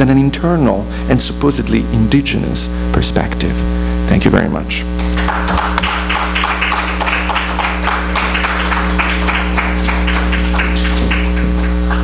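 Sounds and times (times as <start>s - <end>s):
mains hum: 0.0s - 12.0s
audience applauding: 5.0s - 12.0s.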